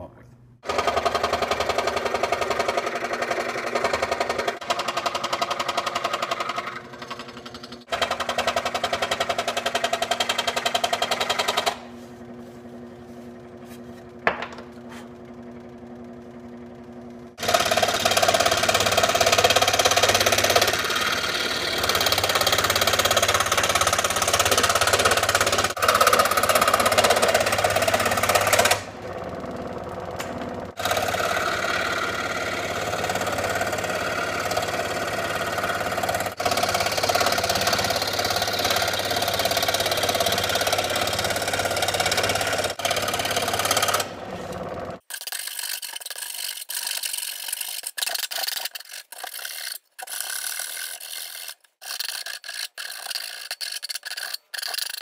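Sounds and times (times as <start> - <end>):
scroll saw buzzing: 0.6 - 14.2, 14.8 - 55.0.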